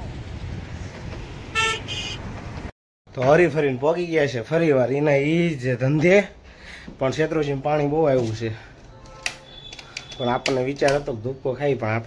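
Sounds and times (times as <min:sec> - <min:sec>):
low wind rumble on microphone: 0:00.0 - 0:01.6
vehicle horn honks: 0:01.5 - 0:02.2.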